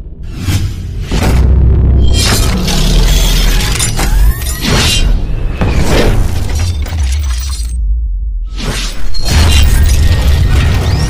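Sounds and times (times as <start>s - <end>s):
heavy bass rumble: 0.0s - 4.0s, 7.8s - 8.5s.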